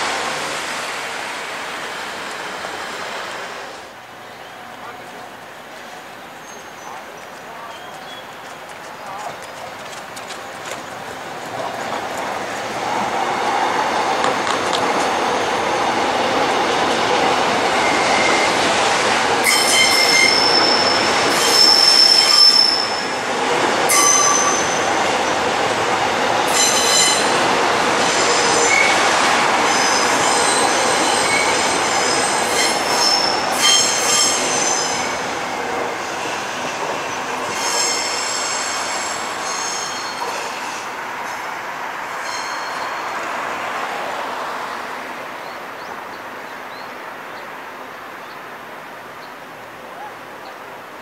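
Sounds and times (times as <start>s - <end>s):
electric train approaching: 0.0s - 4.7s, 8.2s - 46.8s
train wheels clicking over rail joints: 7.2s - 13.1s, 14.2s - 15.2s
shrill wheel squeal: 19.4s - 23.2s, 23.9s - 24.9s, 26.5s - 27.4s, 28.0s - 29.0s, 29.7s - 35.2s, 37.5s - 40.8s, 42.2s - 43.1s.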